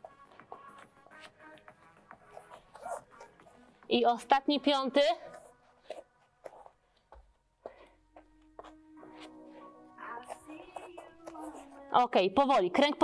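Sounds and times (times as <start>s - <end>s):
soft background music: 0.0s - 13.0s
taps and shuffles on mat: 5.4s - 9.4s.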